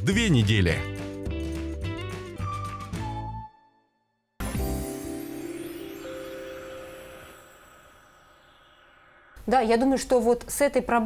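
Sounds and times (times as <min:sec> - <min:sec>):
chime-like jingle notes: 0:04.4 - 0:09.3.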